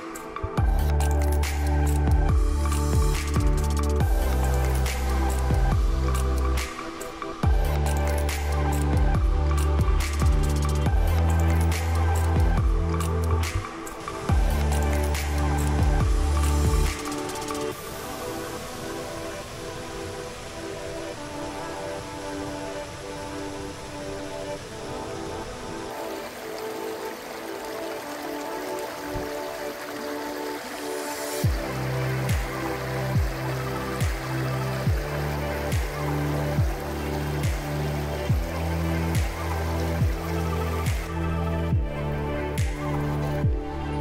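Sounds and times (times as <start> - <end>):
bass line with steady beat: 0.6 - 6.7, 7.4 - 13.7, 14.3 - 17.7, 31.4 - 44.0.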